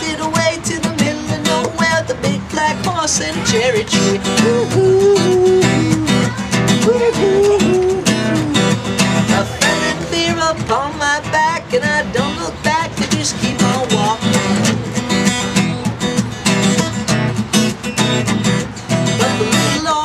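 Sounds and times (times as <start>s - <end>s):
person singing: 0.0s - 14.5s, 19.0s - 20.0s
acoustic guitar strumming: 0.0s - 20.0s.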